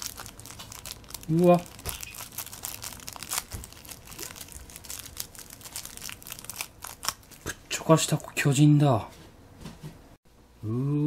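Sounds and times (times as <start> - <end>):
plastic wrapper crinkling: 0.0 - 7.6.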